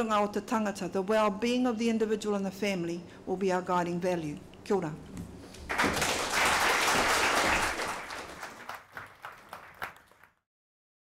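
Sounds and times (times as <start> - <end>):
audience applauding: 5.6 - 10.4.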